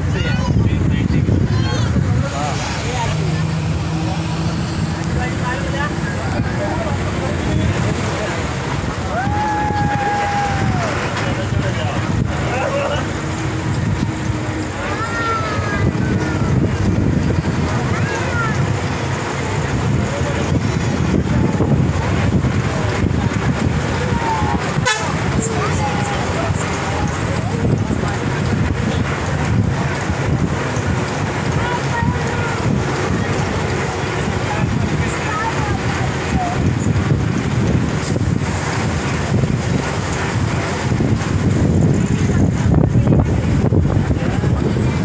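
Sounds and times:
vehicle road noise rumble: 0.0 - 45.0
voices talking: 0.0 - 45.0
wind buffeting microphone: 0.0 - 45.0
short horn toot: 24.8 - 25.2.

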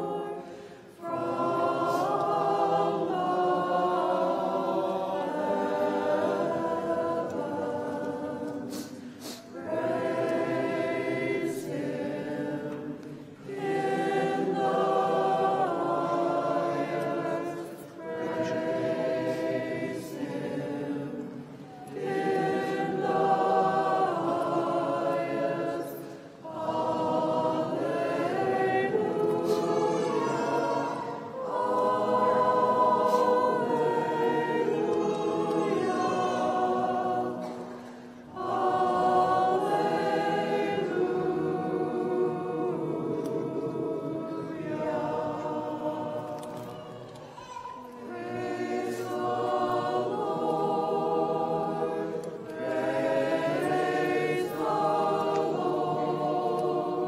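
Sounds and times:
group singing unaccompanied chant: 0.0 - 57.0.

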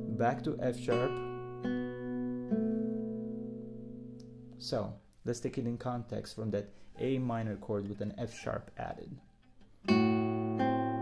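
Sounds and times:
classical guitar chord ringing: 0.0 - 4.6, 9.9 - 11.0.

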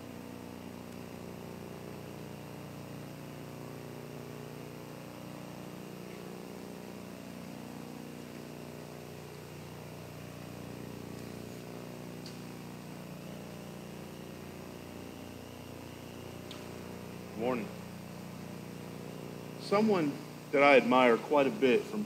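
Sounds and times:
low hum with hiss: 0.0 - 22.0.

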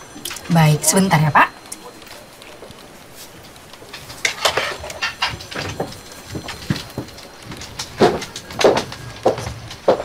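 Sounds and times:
footsteps on hard floor: 4.6 - 10.0.

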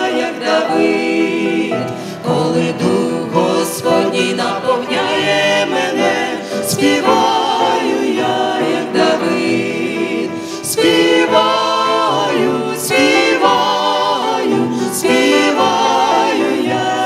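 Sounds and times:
congregation singing worship song: 0.0 - 17.0.

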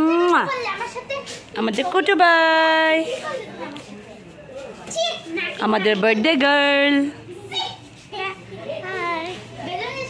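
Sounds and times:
children talking and playing: 0.0 - 10.0.

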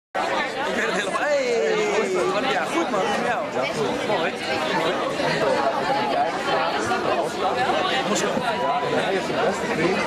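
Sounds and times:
people chattering: 0.2 - 10.0.

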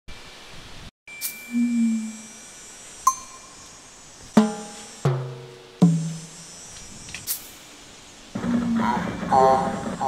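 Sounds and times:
low chime tone: 1.1 - 3.8
high chime ringing: 1.1 - 5.8.

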